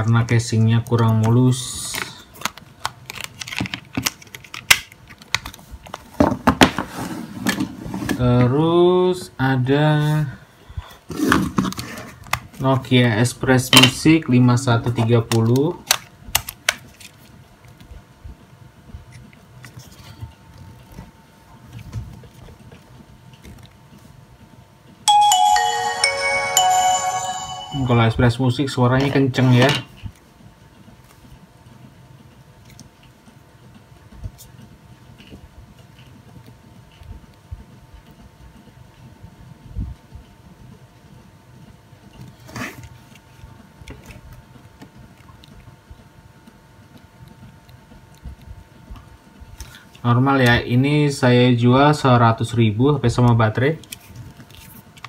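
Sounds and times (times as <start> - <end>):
phone start-up chime tune: 25.1 - 28.4.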